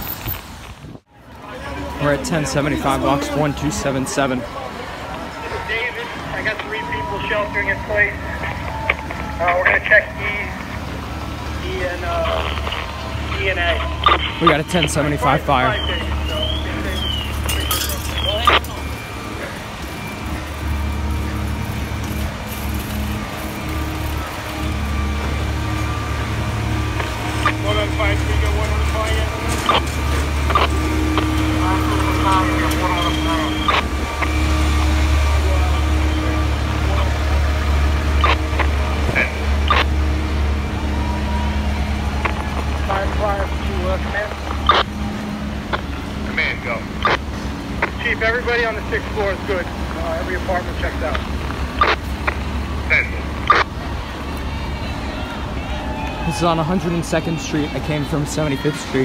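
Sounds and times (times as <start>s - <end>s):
diesel engines idling: 0.0s - 59.0s.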